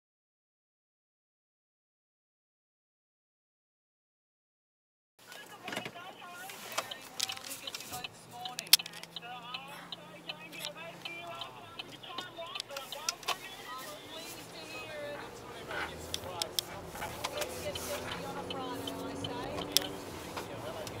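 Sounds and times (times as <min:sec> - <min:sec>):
indistinct talking in a car: 0:05.2 - 0:21.0
sharp clicks and knocks: 0:06.7 - 0:09.2, 0:18.1 - 0:21.0.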